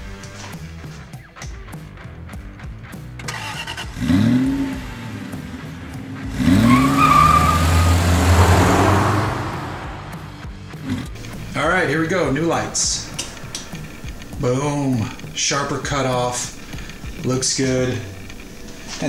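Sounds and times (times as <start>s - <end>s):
music: 0.0s - 9.0s, 9.8s - 19.0s
car engine revving: 3.2s - 19.0s
rushing noise: 6.3s - 10.4s.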